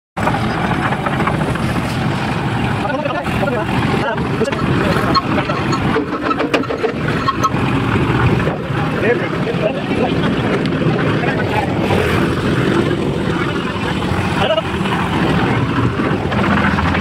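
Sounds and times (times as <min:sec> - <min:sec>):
concrete mixer running: 0:00.2 - 0:17.0.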